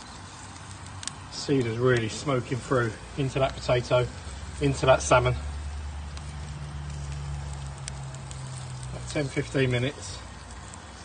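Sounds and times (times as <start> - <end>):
even hiss: 0.0 - 11.0
wood crackling on grill: 0.0 - 11.0.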